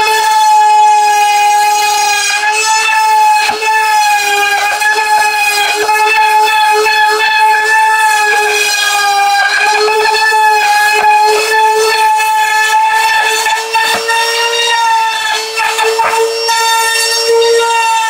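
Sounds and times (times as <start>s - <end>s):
router whining cutting foam: 0.0s - 18.0s.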